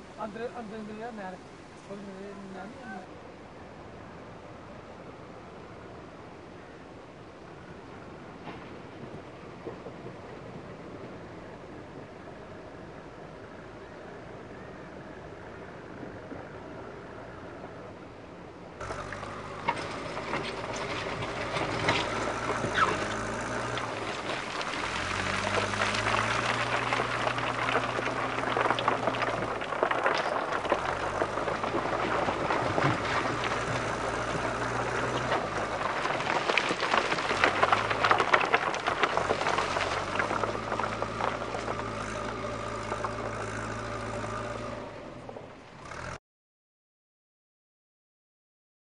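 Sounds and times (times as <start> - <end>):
diesel engine running under load: 18.8 - 36.2, 37.0 - 46.2
knocks and rattles: 18.8 - 44.8.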